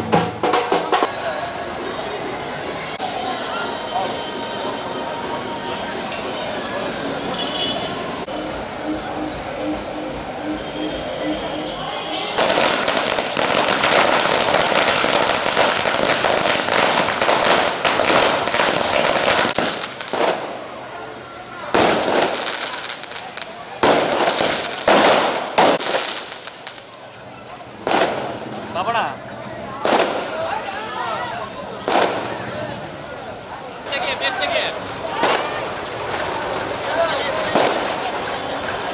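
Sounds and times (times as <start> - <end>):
crowd murmur: 0.0 - 38.9
firecrackers crackling bangs: 12.4 - 20.9, 21.6 - 27.1, 27.7 - 28.8, 29.8 - 30.7, 31.8 - 32.6, 34.7 - 38.9.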